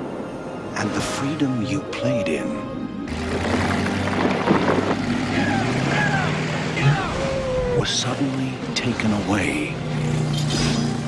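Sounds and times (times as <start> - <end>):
motorboat engines at speed: 3.1 - 11.0.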